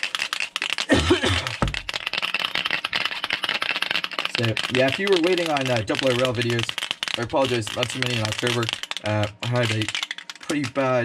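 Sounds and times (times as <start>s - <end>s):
aerosol can rattling: 0.0s - 11.0s
person coughing: 0.9s - 1.6s.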